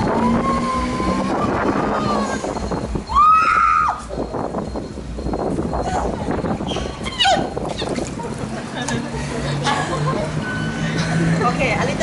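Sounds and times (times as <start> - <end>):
woman laughing and squealing: 5.8 - 8.9.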